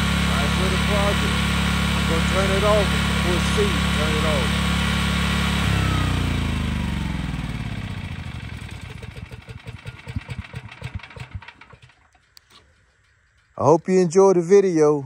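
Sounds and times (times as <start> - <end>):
generator engine shutting off: 0.0 - 13.5.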